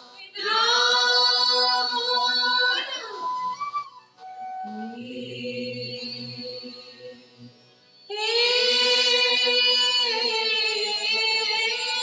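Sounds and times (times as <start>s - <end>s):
female choir singing: 0.2s - 3.2s, 4.7s - 7.2s, 8.1s - 12.0s.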